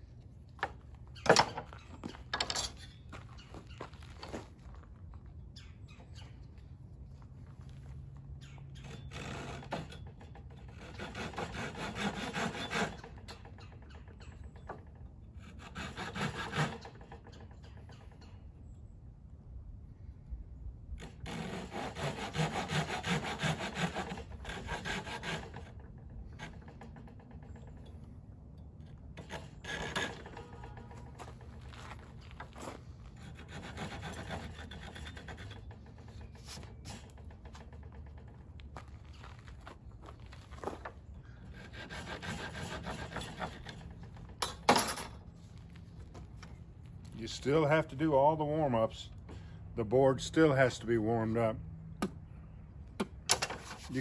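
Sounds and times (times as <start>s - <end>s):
blade scraping wood: 8.4s - 13.9s, 15.3s - 17.6s, 21.0s - 27.9s, 29.1s - 48.3s, 53.3s - 54.0s.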